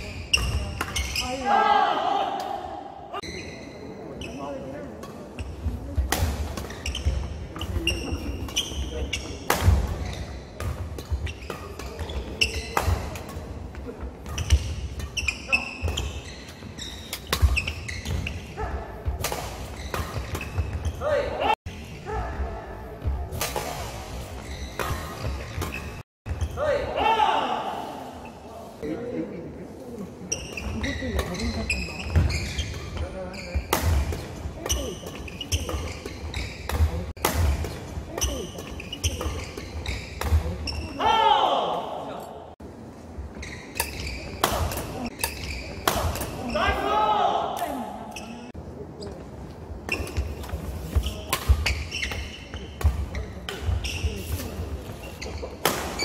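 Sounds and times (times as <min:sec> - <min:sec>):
shoes squeaking on wooden floor: 0:14.3 - 0:18.7, 0:24.3 - 0:26.5, 0:30.3 - 0:33.7, 0:38.2 - 0:41.0, 0:43.3 - 0:44.4, 0:49.9 - 0:56.0
rackets hitting shuttlecock: 0:43.7 - 0:46.4.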